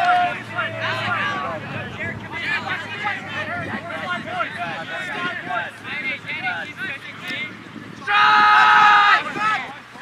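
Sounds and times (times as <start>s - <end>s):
overlapping voices talking: 0.0s - 10.0s.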